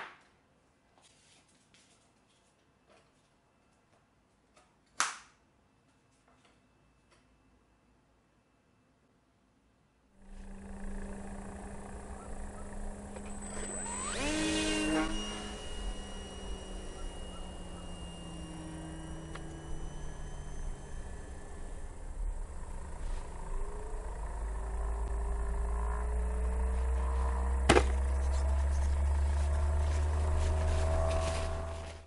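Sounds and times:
low hum of falling tones: 10.2s - 32.0s
sharply rising whine: 10.2s - 32.0s.

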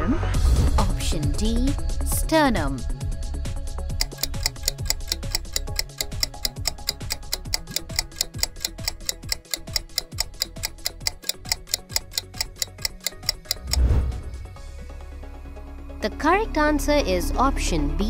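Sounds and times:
low background music: 0.0s - 18.0s
countdown timer ticking: 3.9s - 14.4s.

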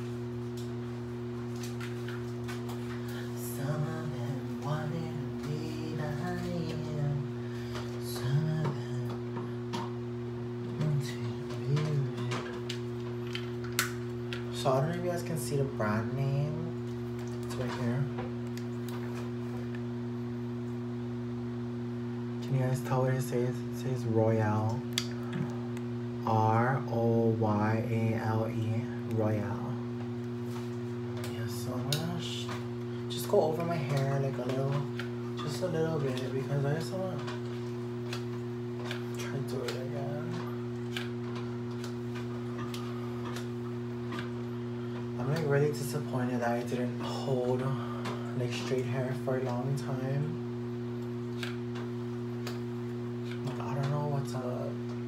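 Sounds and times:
low hum of held tones: 0.0s - 55.0s.

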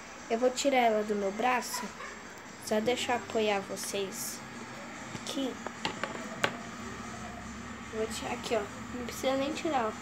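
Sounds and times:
faint steady background hum: 0.0s - 10.0s.

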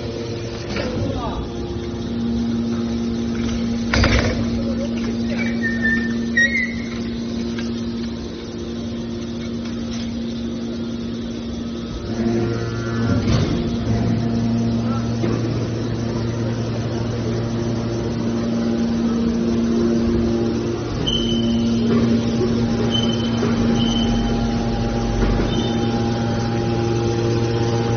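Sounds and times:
deeper pump drone: 0.0s - 27.9s
hydraulic motor and pump humming: 0.0s - 27.9s.

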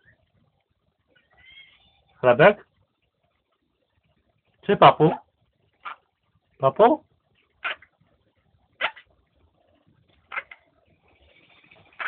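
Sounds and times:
parrot call: 1.1s - 2.2s, 7.6s - 7.9s, 8.8s - 9.1s, 10.3s - 12.0s.

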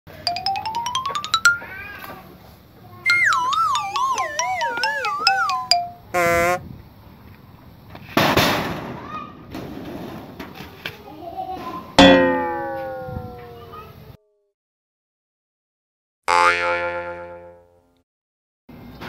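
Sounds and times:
rising plucked notes: 0.3s - 1.9s, 3.1s - 6.2s, 12.0s - 13.7s
falling warbling tone: 3.1s - 6.2s, 12.0s - 13.7s.

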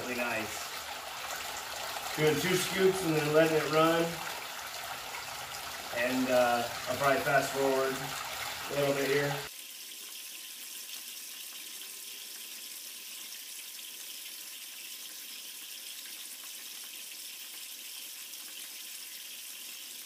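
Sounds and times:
water pouring and splashing: 0.0s - 20.0s.

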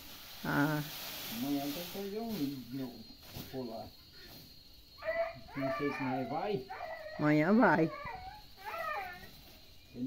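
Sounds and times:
dog whining: 5.0s - 9.4s.

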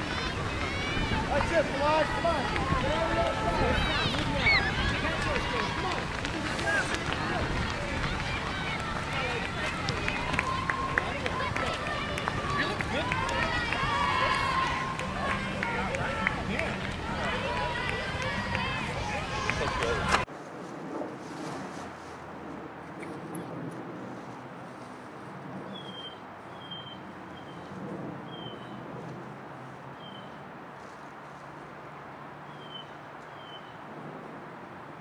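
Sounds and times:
spectators shouting: 0.0s - 20.2s
runners' footsteps on grass: 0.0s - 22.8s, 27.3s - 33.7s.

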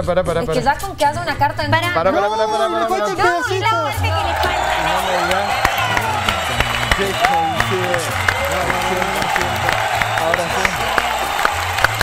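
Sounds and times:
background music with steady beat: 0.0s - 12.0s
people exclaiming: 2.2s - 12.0s
people clapping: 4.0s - 12.0s.

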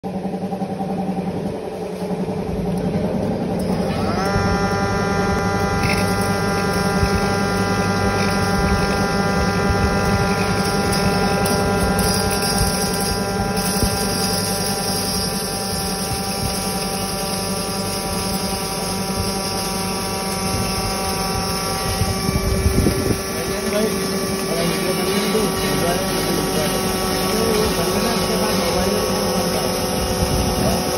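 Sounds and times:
flour mill motor whining: 0.0s - 30.9s.

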